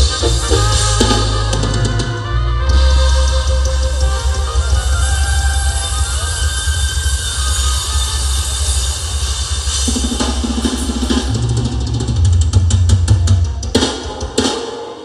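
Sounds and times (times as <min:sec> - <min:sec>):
live band playing: 0:00.0 - 0:15.0
snare drum roll: 0:09.8 - 0:15.0.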